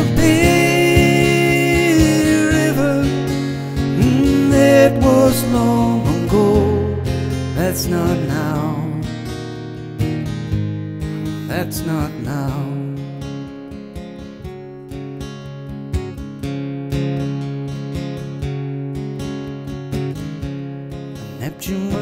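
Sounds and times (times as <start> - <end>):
person singing: 0.0 - 9.2, 11.4 - 13.2, 21.3 - 22.0
acoustic guitar strumming: 0.0 - 22.0.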